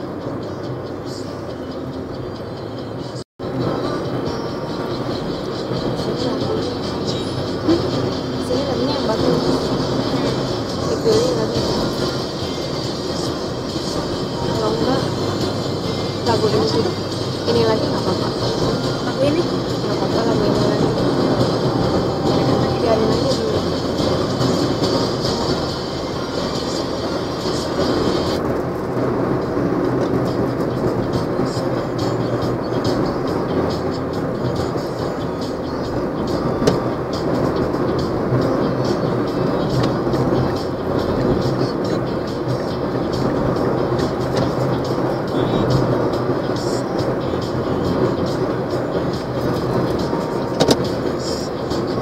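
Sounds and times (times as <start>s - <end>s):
bus engine and road noise: 0.0s - 52.0s.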